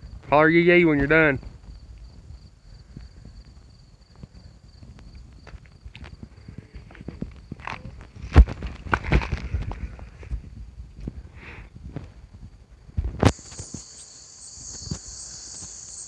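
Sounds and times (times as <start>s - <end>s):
crickets chirping: 0.0s - 10.6s, 12.4s - 16.0s
footsteps through grass: 13.3s - 16.0s.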